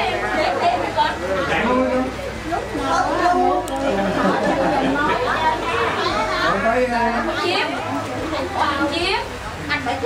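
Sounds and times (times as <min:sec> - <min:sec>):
overlapping chatter of people: 0:00.0 - 0:10.0.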